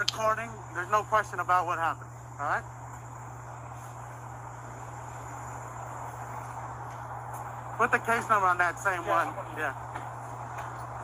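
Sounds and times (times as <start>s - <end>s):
constant low hum: 0.0s - 11.0s
thin steady high tone: 0.0s - 11.0s.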